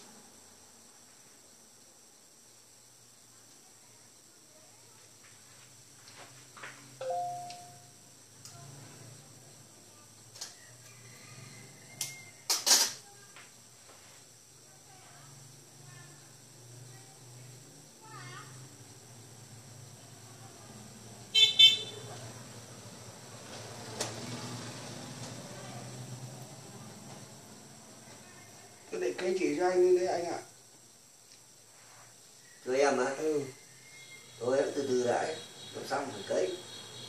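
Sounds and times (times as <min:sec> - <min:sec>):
faint low hum: 0:00.0 - 0:23.3
bowl ringing: 0:07.0 - 0:08.0
vehicle horn honking: 0:21.3 - 0:22.1, 0:34.8 - 0:37.0
faint scrapes: 0:31.6 - 0:32.5.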